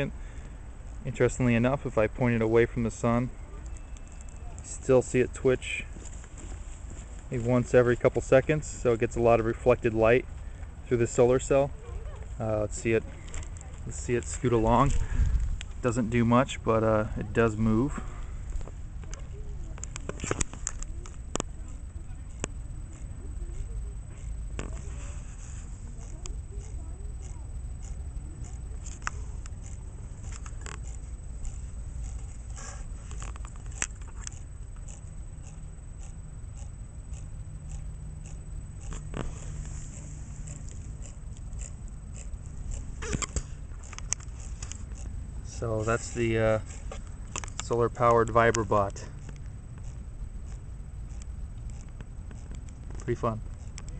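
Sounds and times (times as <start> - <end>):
low outdoor rumble: 0.0 - 53.9
tiny vibrating motor clicks: 3.6 - 6.5, 7.2 - 17.8, 18.4 - 53.9.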